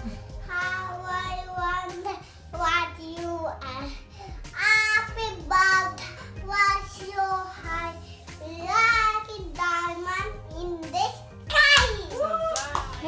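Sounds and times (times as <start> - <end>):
toddler singing: 0.0 - 12.2.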